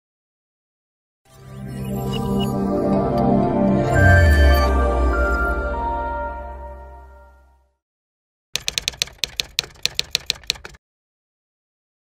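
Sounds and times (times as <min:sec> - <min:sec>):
typewriter key clicks: 0:08.6 - 0:10.8.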